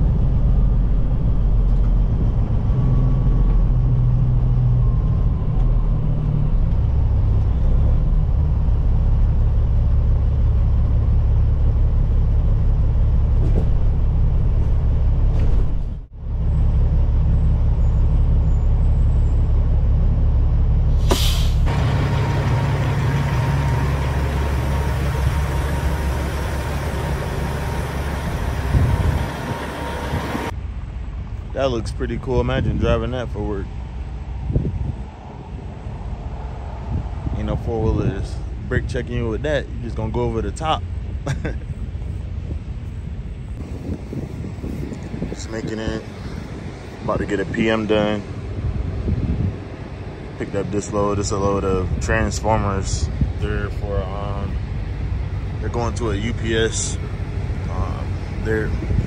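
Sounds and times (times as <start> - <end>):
diesel truck engine rumbling: 0.0 - 34.4, 36.9 - 59.0
short sharp hiss: 21.0 - 21.7.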